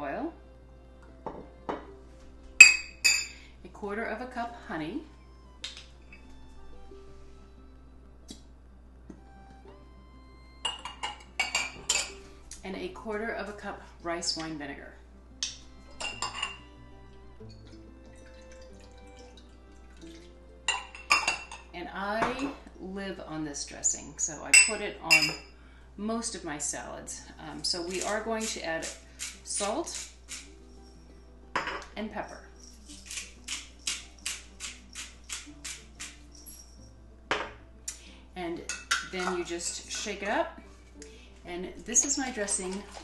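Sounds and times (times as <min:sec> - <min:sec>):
soft background music: 0:00.0 - 0:43.0
glass clinking: 0:02.6 - 0:03.4, 0:10.6 - 0:12.2, 0:15.9 - 0:16.7, 0:20.2 - 0:22.6, 0:24.6 - 0:25.5, 0:31.6 - 0:37.6, 0:38.7 - 0:39.4
liquid trickling into a cup: 0:17.4 - 0:20.4
pepper grinder rasping: 0:27.9 - 0:30.6, 0:32.8 - 0:36.3.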